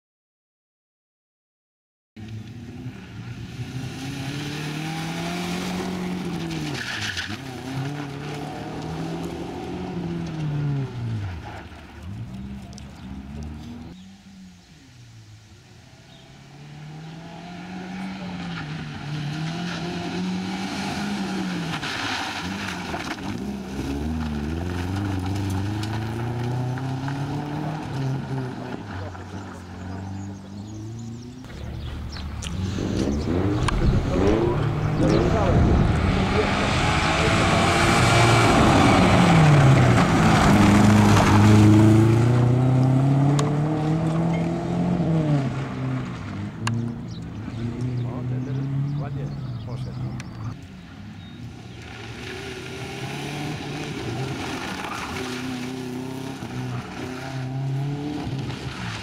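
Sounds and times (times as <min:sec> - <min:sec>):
rally car engine revving: 0:02.2 - 0:59.0.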